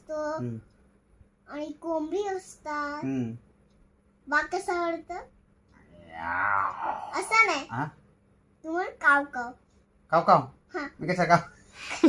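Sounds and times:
child's voice: 0.0 - 0.6, 1.5 - 3.3, 4.3 - 5.3, 6.5 - 7.9, 8.6 - 9.6
man moaning: 5.9 - 7.1.

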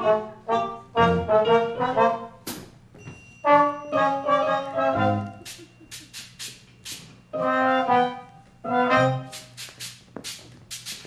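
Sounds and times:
brass held chords: 0.0 - 2.4, 3.5 - 5.4, 7.3 - 9.4.

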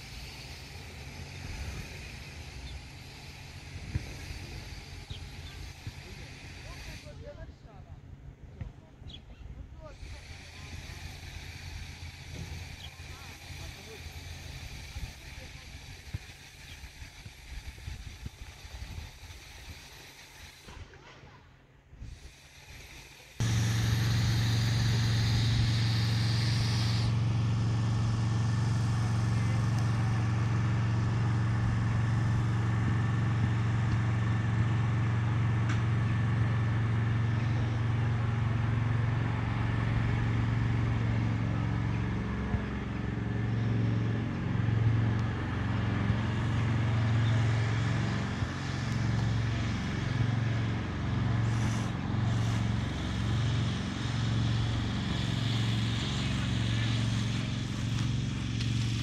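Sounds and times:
vehicle engine running: 0.0 - 59.0.

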